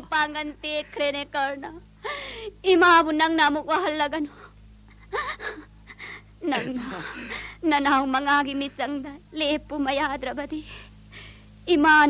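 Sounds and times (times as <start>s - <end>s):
low recording hum: 0.0s - 12.0s.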